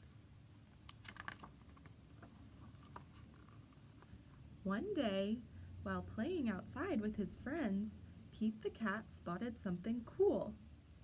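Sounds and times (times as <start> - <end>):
book page turning: 0.7 - 4.4.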